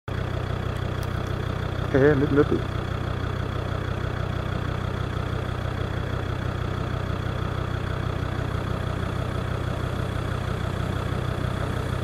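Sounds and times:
engine running at low revs: 0.1s - 12.0s.

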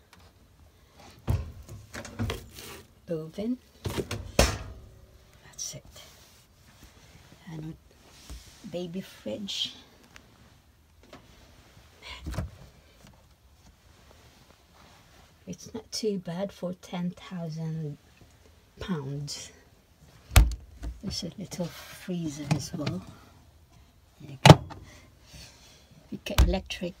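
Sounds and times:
fridge door thump: 1.3s - 2.4s.

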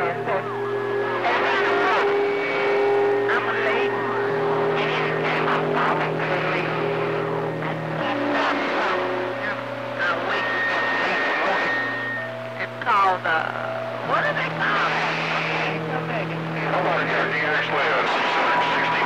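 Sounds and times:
garbled radio voices: 0.0s - 19.0s
low drone: 0.0s - 19.0s
radio static: 0.0s - 19.0s
whistling tones: 11.5s - 12.3s.

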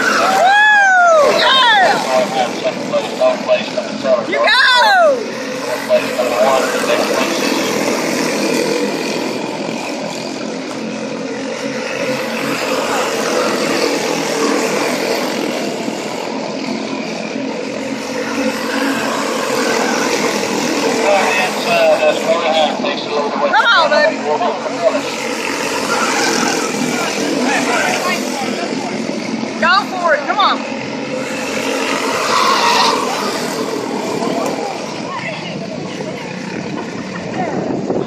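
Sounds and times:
voices: 0.0s - 9.2s, 10.1s - 38.0s
small race car engines running: 0.0s - 38.0s.

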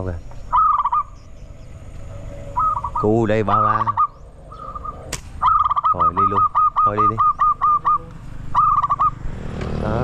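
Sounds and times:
bird calling: 0.0s - 9.4s
motorbike engine: 7.4s - 10.0s.

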